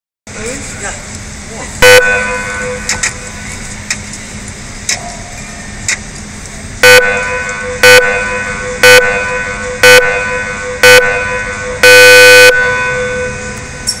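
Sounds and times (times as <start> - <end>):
short loud beeps: 1.8 - 2.9, 6.8 - 13.6.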